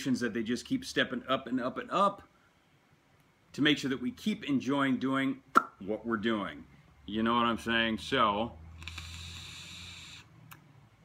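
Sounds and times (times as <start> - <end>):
vape coil sizzling: 8.7 - 10.4
air hissing: 8.7 - 10.5.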